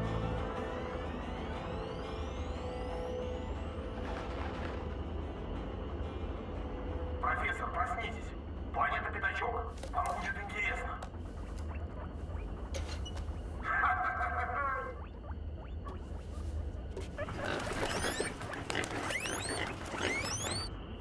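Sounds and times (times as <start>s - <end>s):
steady low hum: 0.0s - 21.0s
skin squeaking against glass: 15.0s - 20.7s.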